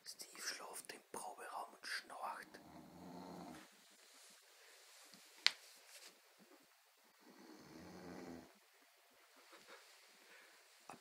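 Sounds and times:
person snoring faintly: 0:01.9 - 0:03.7, 0:07.2 - 0:08.6.

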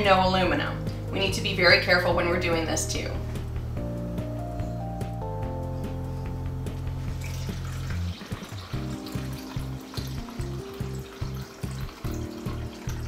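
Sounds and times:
background music with low beat: 0:00.0 - 0:13.0
liquid trickling into coffee filter: 0:07.1 - 0:13.0.

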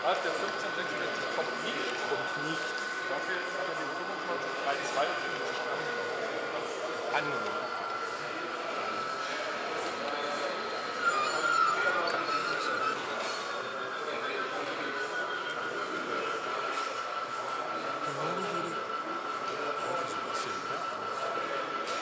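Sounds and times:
crowd chatter in large hall: 0:00.0 - 0:22.0
thin steady high tone: 0:00.0 - 0:22.0.

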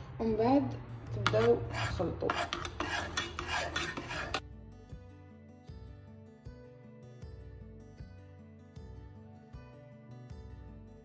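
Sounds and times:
metal spoon scraping saucepan: 0:01.1 - 0:04.4
soft music with plucked notes: 0:04.4 - 0:11.0.

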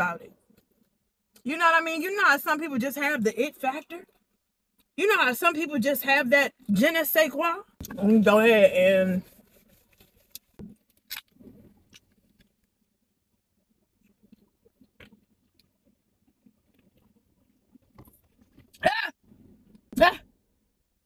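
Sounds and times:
person coughing: 0:18.8 - 0:19.1.

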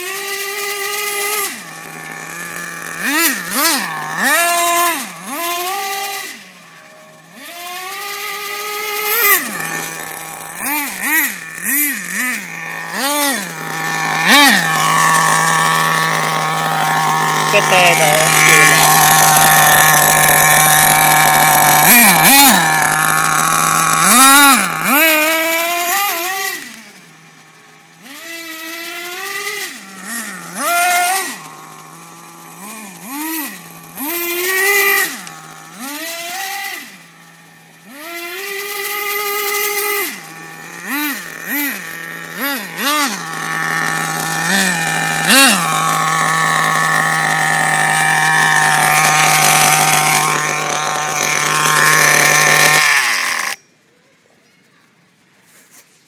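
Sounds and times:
small nitro engine revving: 0:00.0 - 0:53.6.

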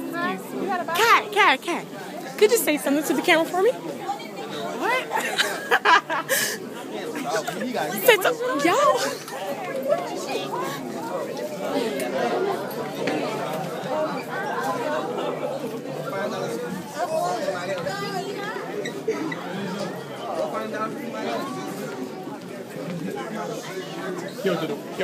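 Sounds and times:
babble of overlapping voices: 0:00.0 - 0:25.0.

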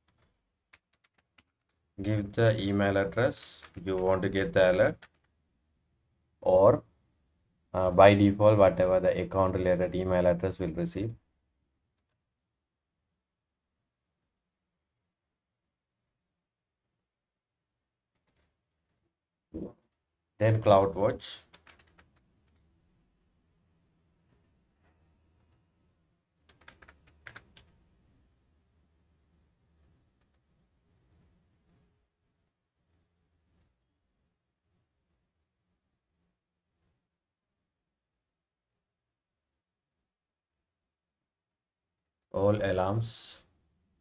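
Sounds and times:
keyboard typing: 0:00.0 - 0:01.9, 0:03.0 - 0:05.4, 0:19.6 - 0:22.7, 0:26.4 - 0:27.8.

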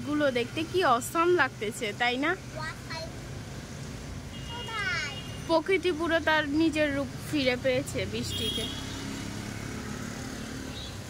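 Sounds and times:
outdoor street ambience: 0:00.0 - 0:11.0.

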